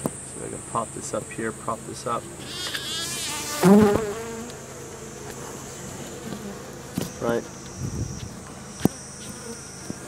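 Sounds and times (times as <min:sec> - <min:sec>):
honeybees buzzing: 0:00.3 - 0:10.0.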